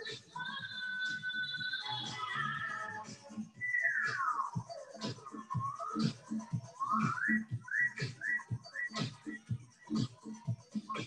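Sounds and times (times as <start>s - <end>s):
high whistle-like melody: 0.0s - 11.0s
workout music with steady beat: 0.0s - 11.0s.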